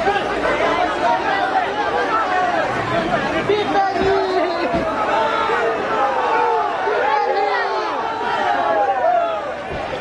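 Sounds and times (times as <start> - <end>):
crowd of men talking and shouting: 0.0 - 10.0.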